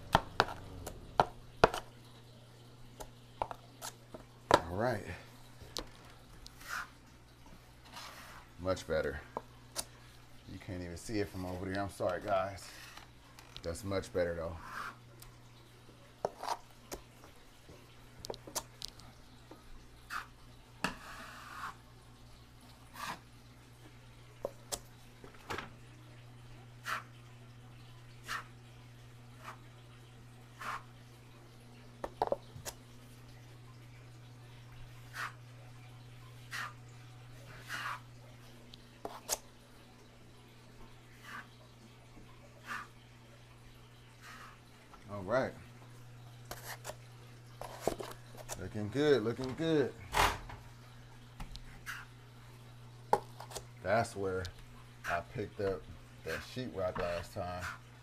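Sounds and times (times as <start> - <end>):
taping knife scraping compound: 39.0 - 39.4, 46.5 - 47.0.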